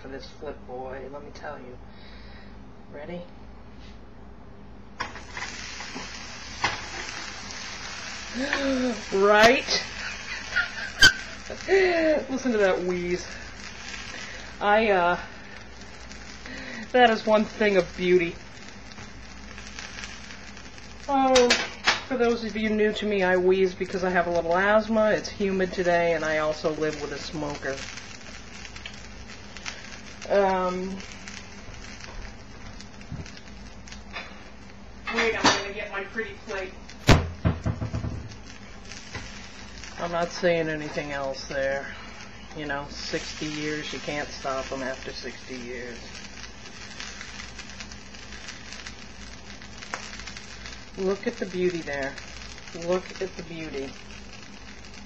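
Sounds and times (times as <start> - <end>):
faint crackles: 5.0 - 55.0
sandwich sizzling in a pan: 5.0 - 55.0.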